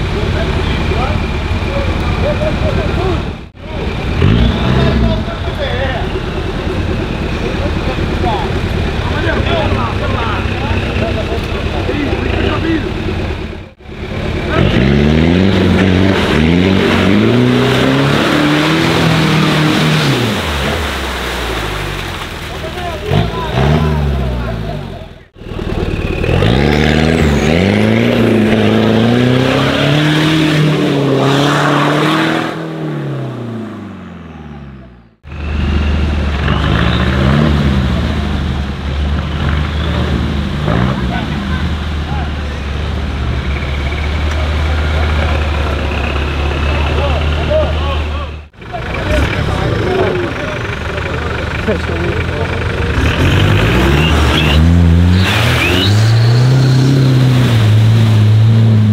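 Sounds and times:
truck engines revving in mud: 0:00.0 - 0:58.9.

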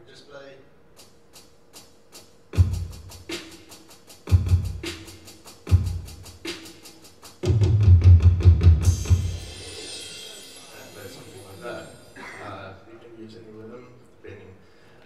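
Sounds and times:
electronic hi-hat ticks: 0:00.9 - 0:12.2
rapid low drum hits: 0:02.6 - 0:03.5, 0:04.2 - 0:09.8
heavy bass drum hits: 0:07.5 - 0:10.0
cymbal crash: 0:08.6 - 0:12.5.

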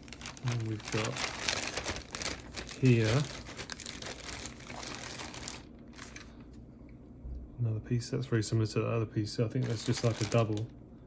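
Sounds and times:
plastic bag crinkling: 0:00.0 - 0:06.5, 0:09.6 - 0:10.7.

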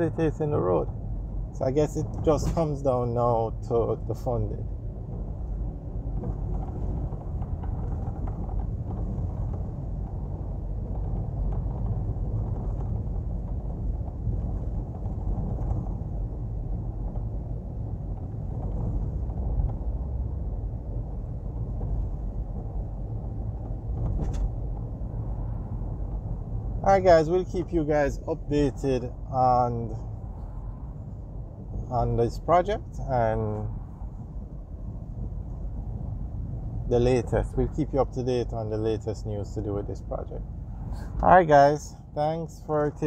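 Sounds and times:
car road and engine noise: 0:00.0 - 0:43.0.

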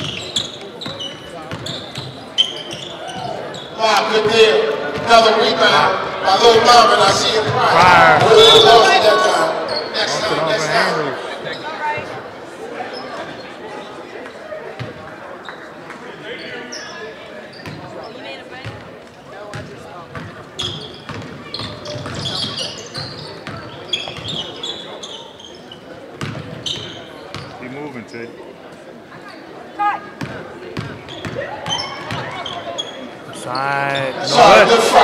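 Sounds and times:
voices echoing in hall: 0:00.0 - 0:35.0.

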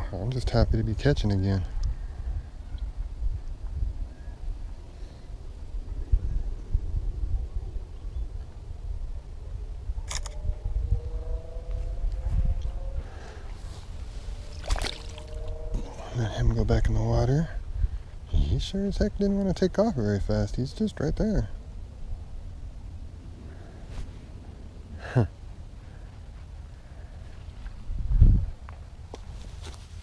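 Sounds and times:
low rumble on microphone: 0:00.0 - 0:30.0.

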